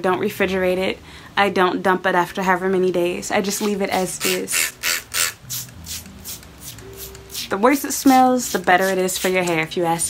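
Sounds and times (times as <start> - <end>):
spray bottle hissing: 4.2 - 9.5.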